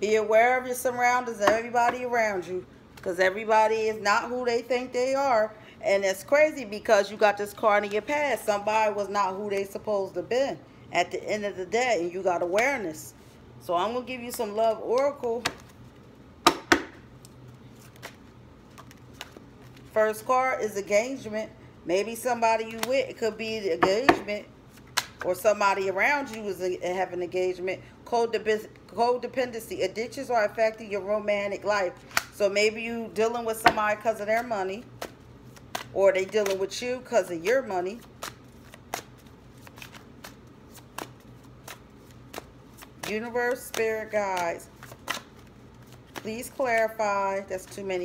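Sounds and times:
sharp slaps of cards: 16.4s - 17.0s, 24.8s - 25.2s, 32.1s - 32.4s, 35.0s - 36.6s, 38.2s - 45.4s
cards rustling: 17.2s - 20.0s, 33.6s - 48.0s
sharp card snaps: 24.8s - 25.2s.

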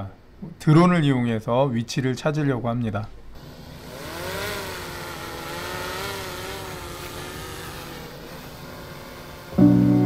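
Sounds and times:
drone propellers whining: 3.4s - 10.0s.

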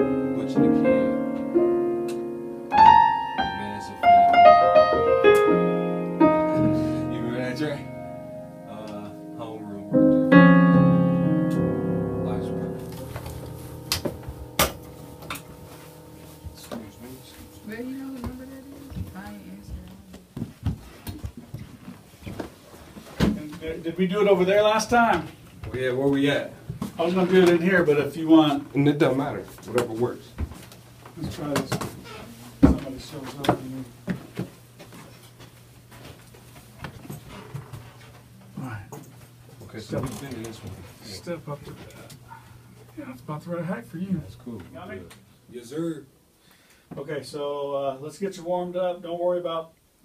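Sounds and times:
faint steady hum: 0.0s - 50.0s
faint footsteps in a room: 5.1s - 7.4s, 12.4s - 43.4s
steady low hum: 5.7s - 20.8s.

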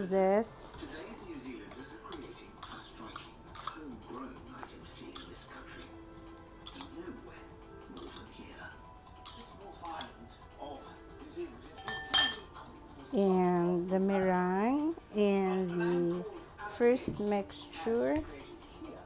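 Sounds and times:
mixer beaters clinking on metal bowl: 11.8s - 12.5s.

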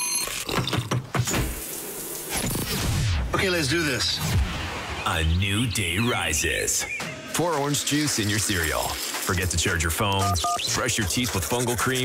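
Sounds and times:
short electronic beep: 0.0s - 0.5s, 10.2s - 10.7s
hiss like running water: 1.3s - 2.7s, 7.8s - 10.0s.

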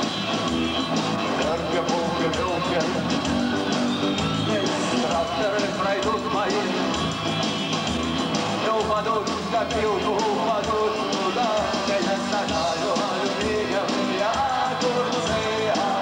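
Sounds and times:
electric guitars: 0.0s - 16.0s
steady drum beat: 0.0s - 16.0s.

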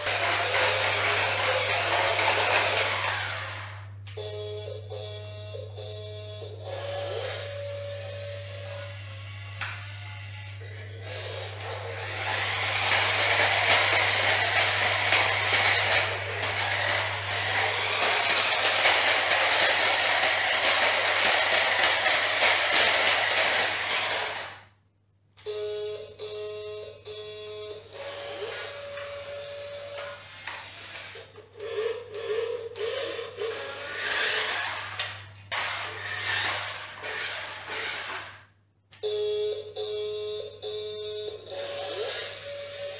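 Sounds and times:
toy motor whirring: 0.0s - 3.8s, 6.7s - 24.6s, 29.8s - 38.4s.

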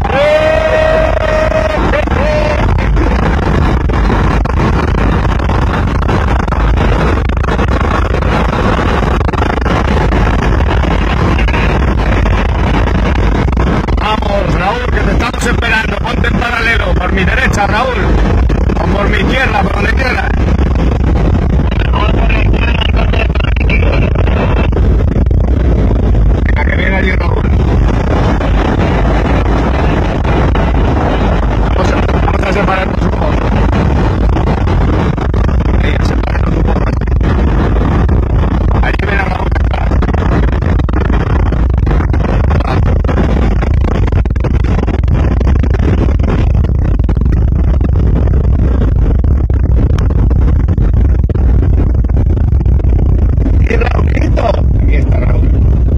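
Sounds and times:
vehicle engine and tyre rumble: 0.0s - 55.9s
wind buffeting microphone: 0.0s - 55.9s.

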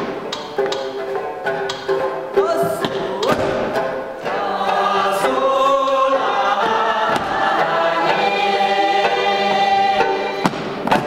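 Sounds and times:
group singing: 2.3s - 11.0s.

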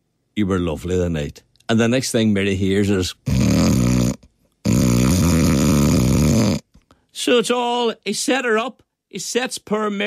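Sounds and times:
man imitating snoring: 3.2s - 6.7s.

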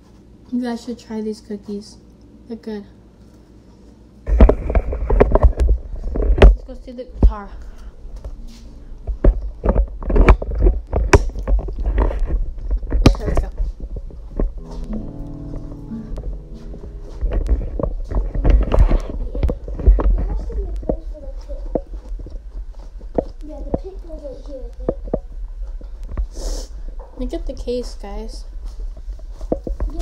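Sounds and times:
microphone handling knocks: 4.3s - 7.4s, 9.0s - 24.0s, 24.8s - 26.4s, 28.8s - 30.0s
steady musical tones: 14.2s - 20.8s.

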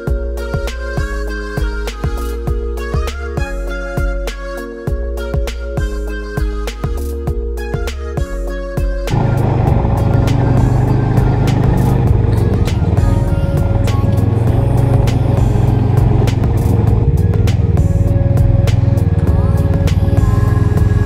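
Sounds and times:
background music: 0.0s - 21.0s
snowmobile engine running: 9.1s - 21.0s.

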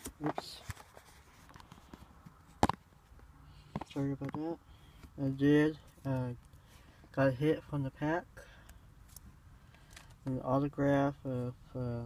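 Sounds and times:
phone handling noise: 0.0s - 3.0s.

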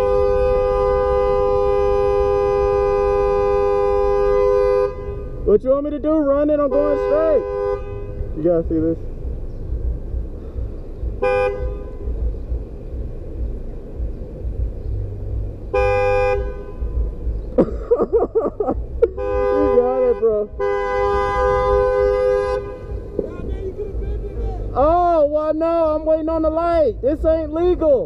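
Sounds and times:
car horn honking: 0.0s - 8.7s, 11.1s - 12.4s, 15.6s - 17.4s, 18.5s - 24.9s.

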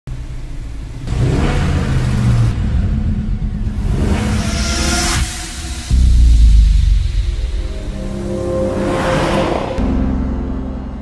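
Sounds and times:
car engine revving: 0.1s - 10.6s.

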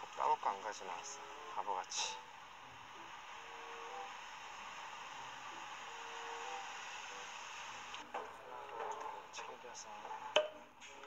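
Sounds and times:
light rain hiss on wet street: 0.0s - 8.1s.

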